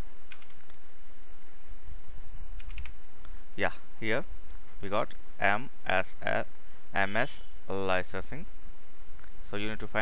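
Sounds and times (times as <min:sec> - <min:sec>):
computer keyboard keys tapping: 0:00.3 - 0:00.8, 0:02.6 - 0:02.9.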